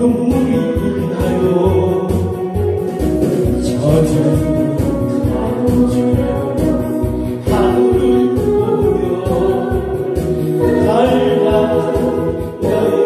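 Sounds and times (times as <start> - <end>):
backing music with steady beat: 0.0 - 13.0
man singing into a microphone: 0.0 - 13.0.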